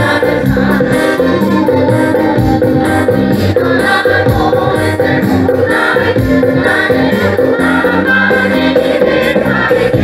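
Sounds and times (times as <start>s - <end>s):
instrumental accompaniment with beat: 0.0s - 10.0s
women's choir singing: 0.0s - 10.0s.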